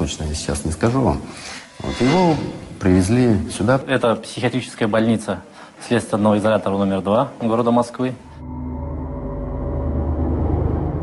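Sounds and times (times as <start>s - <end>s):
low rumbling drone: 1.5s - 3.5s, 8.2s - 11.0s.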